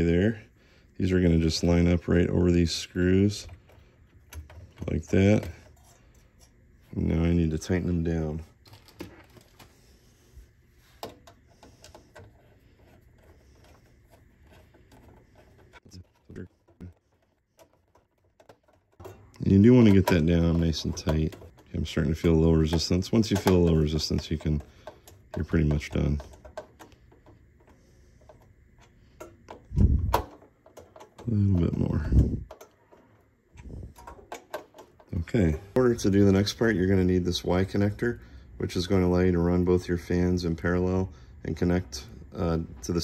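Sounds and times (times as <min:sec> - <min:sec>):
screwdriver clicks and scrapes: 0:10.9 - 0:31.3.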